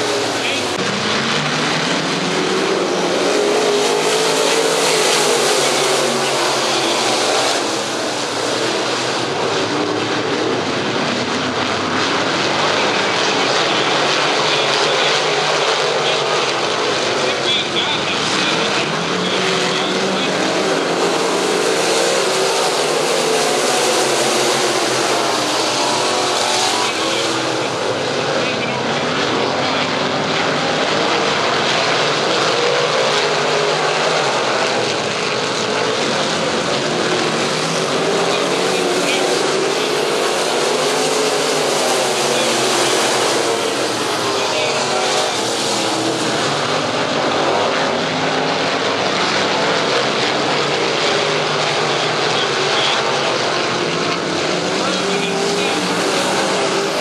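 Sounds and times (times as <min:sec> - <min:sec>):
race car engines roaring: 0:00.0 - 0:57.0.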